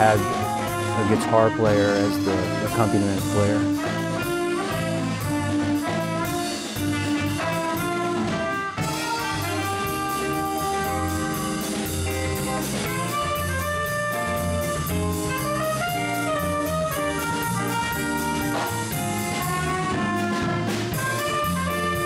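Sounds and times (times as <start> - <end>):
drum kit cymbal beat: 0.0 - 22.0
trumpet melody: 0.0 - 22.0
walking bass: 0.0 - 22.0.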